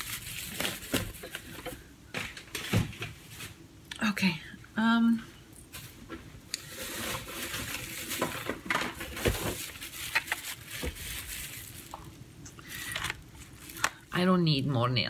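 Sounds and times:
packaging rustling: 0.0s - 3.6s, 6.6s - 14.1s.

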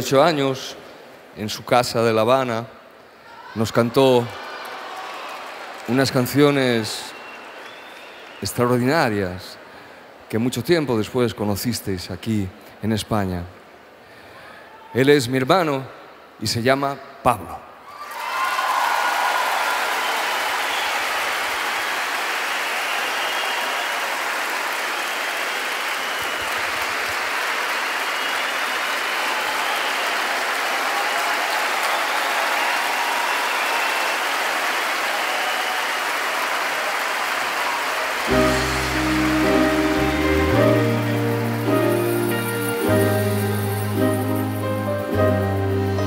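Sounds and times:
audience applauding: 3.7s - 9.2s, 17.9s - 46.0s
band playing: 38.3s - 46.0s.

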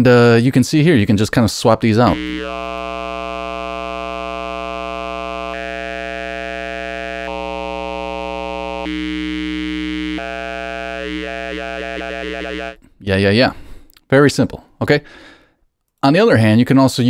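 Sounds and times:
filtered synthesizer note: 2.0s - 12.8s.

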